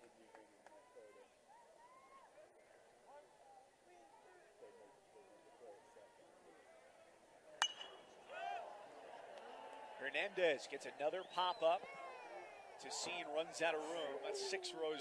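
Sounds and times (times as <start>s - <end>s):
murmur of crowd: 0.0s - 15.0s
metal bat hitting ball: 7.6s - 8.1s.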